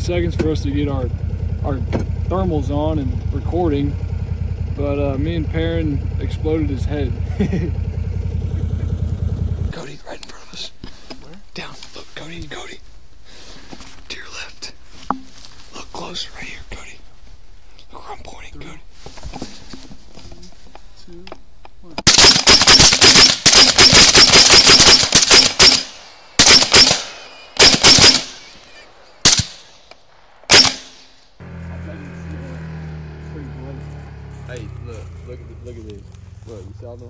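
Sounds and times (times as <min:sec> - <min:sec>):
truck idling: 0:00.0 - 0:09.8, 0:30.0 - 0:37.0
hushed whispers: 0:14.1 - 0:14.8, 0:17.8 - 0:18.8
rapid rifle fire: 0:22.1 - 0:28.5, 0:29.2 - 0:31.2.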